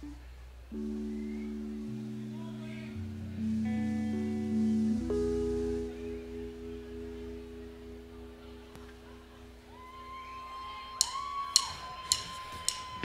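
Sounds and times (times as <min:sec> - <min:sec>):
sustained instrument tones: 0:00.0 - 0:11.1.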